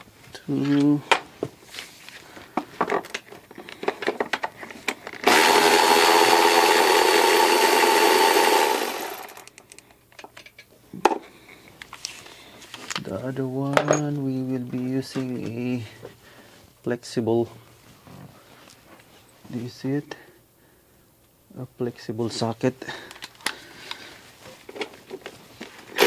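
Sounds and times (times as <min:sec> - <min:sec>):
power ratchet spinning bolt: 0:05.2 - 0:09.5.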